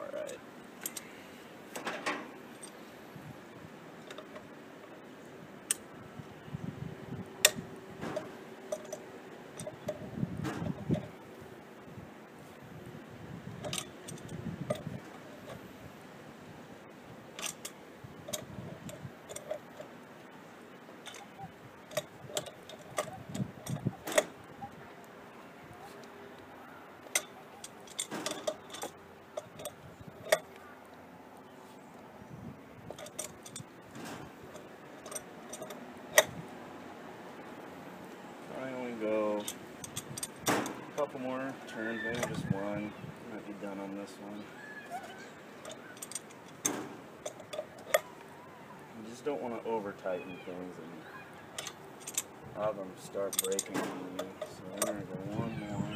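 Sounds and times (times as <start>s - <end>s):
tools clinking on brass fitting: 7.4s - 9.0s, 13.6s - 15.6s, 17.4s - 19.9s, 21.0s - 24.3s, 27.0s - 30.5s, 32.9s - 33.7s, 34.5s - 36.3s, 39.4s - 41.2s, 42.1s - 42.4s, 45.6s - 48.1s, 51.5s - 52.3s, 53.0s - 55.4s.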